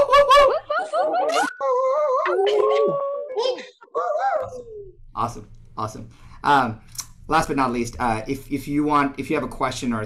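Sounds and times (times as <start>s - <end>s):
people howling like wolves: 0.1s - 4.9s.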